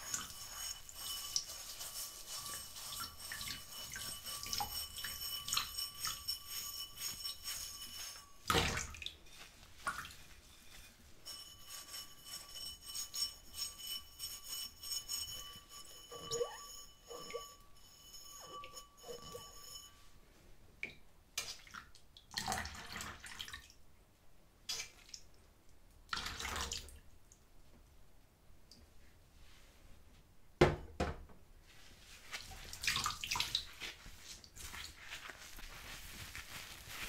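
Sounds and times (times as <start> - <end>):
water swishing: 0.0 - 17.5
sponge squeaking on glass: 0.0 - 20.0
high ringing tone: 0.1 - 8.5, 10.6 - 20.2
water dripping and sloshing: 8.5 - 10.3, 21.4 - 23.8, 24.7 - 25.4, 32.3 - 35.2
knock: 30.6 - 31.4.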